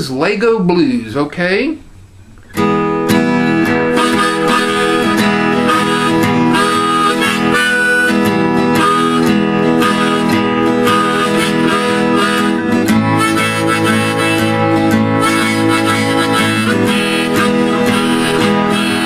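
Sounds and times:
acoustic guitar strumming: 2.4s - 19.0s
harmonica: 3.4s - 19.0s.

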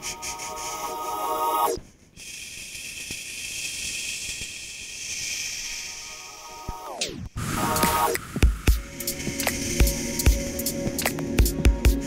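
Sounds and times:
looped beat: 0.0s - 1.8s, 6.6s - 12.0s
filtered noise hiss: 0.0s - 12.0s.

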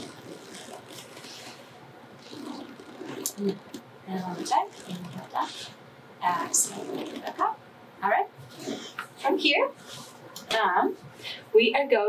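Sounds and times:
woman breathing: 11.1s - 11.6s.

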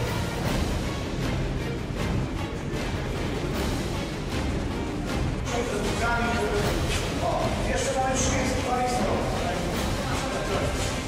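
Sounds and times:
group of people talking: 2.5s - 11.0s.

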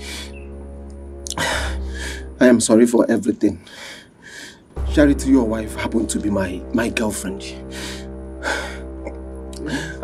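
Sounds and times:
background music: 0.0s - 10.0s
man gasping breath: 9.6s - 10.0s.

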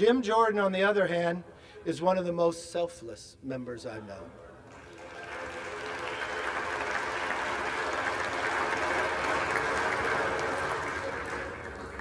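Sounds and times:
applause: 4.7s - 12.0s.

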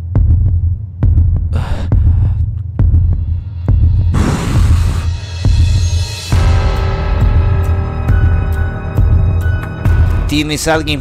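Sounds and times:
throbbing bass pulse: 0.0s - 9.4s.

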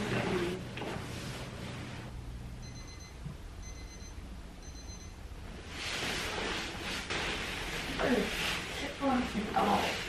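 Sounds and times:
short high-pitched alarm beeps: 2.6s - 5.2s.

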